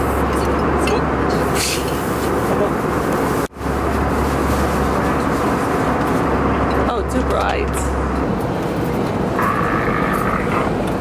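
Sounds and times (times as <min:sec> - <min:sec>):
airliner cabin noise: 0:00.0 - 0:11.0
constant low drone: 0:03.6 - 0:11.0.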